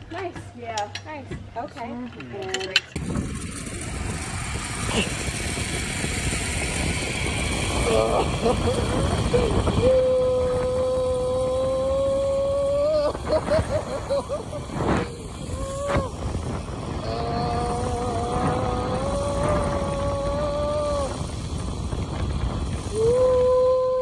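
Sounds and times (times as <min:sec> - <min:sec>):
wind on microphone: 0:03.0 - 0:24.0
zip line trolley rushing on cable: 0:03.0 - 0:24.0
long steady high tone: 0:03.3 - 0:24.0.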